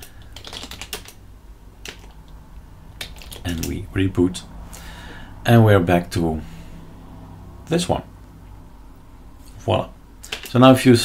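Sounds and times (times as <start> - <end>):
computer keyboard keystrokes: 0.0 - 1.2, 1.8 - 2.3, 3.0 - 3.8, 10.2 - 10.6.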